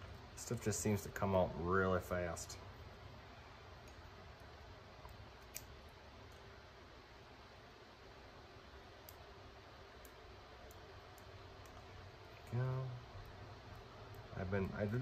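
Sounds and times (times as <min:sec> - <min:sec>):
folding knife metal clicks: 0:05.4 - 0:05.7.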